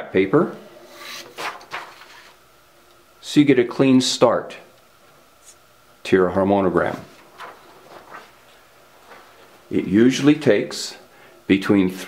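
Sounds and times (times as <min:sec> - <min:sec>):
paper swishing: 0:00.9 - 0:02.4, 0:06.8 - 0:09.5.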